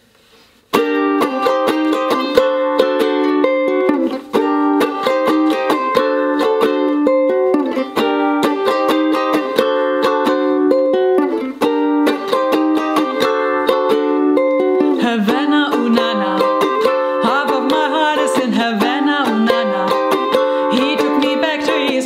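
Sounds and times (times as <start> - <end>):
ukulele strumming: 0.3 - 22.0
woman singing: 14.8 - 22.0.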